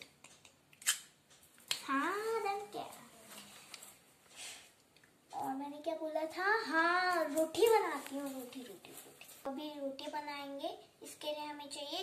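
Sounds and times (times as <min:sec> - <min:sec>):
person speaking: 0:01.7 - 0:03.8.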